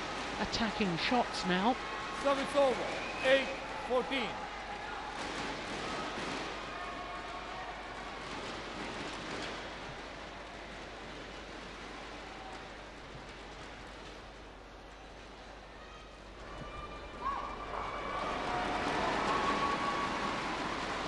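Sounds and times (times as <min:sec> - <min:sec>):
crowd applauding: 0:00.0 - 0:12.8, 0:17.4 - 0:21.0.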